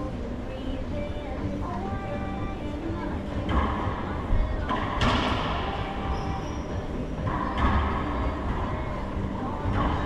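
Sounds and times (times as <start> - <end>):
steady low rumble: 0.0 - 10.0.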